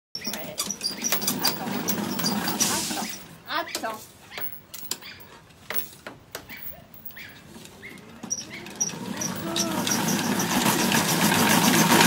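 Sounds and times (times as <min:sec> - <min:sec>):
short high squeaks: 0:00.2 - 0:05.3, 0:06.4 - 0:10.9.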